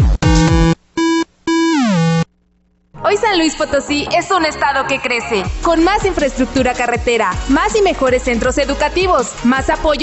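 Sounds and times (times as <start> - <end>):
synthesizer notes sliding down: 0.0 - 2.3.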